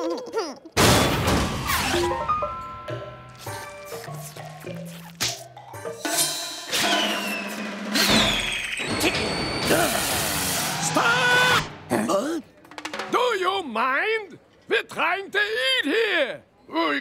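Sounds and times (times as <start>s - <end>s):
background music: 1.4s - 13.8s.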